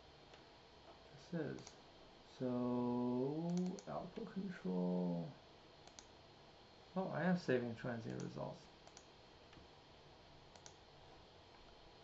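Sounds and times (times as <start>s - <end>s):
computer mouse clicks: 1.6s - 1.8s, 3.5s - 3.9s, 5.8s - 6.2s, 8.0s - 9.6s, 10.5s - 10.8s.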